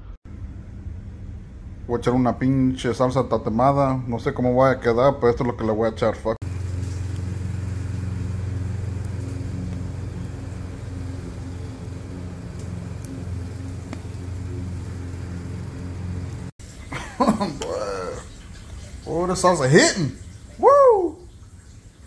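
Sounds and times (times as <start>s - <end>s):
low motor hum: 0.0s - 2.0s, 6.4s - 16.6s.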